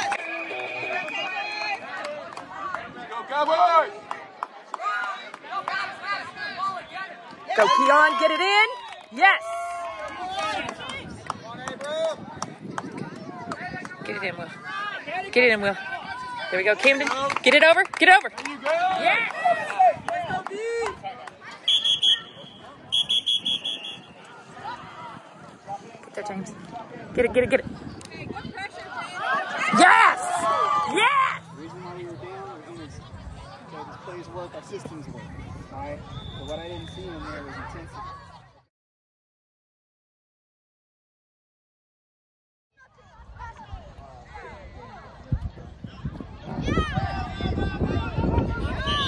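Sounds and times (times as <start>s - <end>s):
referee's whistle blasts: 0.1s - 1.4s, 21.7s - 24.2s, 36.1s - 37.2s
voices calling out: 18.4s - 38.5s.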